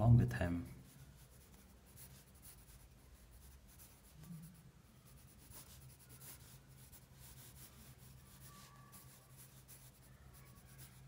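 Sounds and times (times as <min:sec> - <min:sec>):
pencil scratching on paper: 0:00.8 - 0:11.0.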